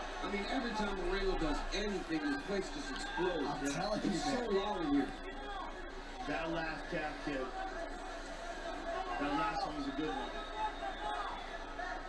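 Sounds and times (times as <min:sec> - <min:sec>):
men commentating through a speaker: 0:00.0 - 0:12.0.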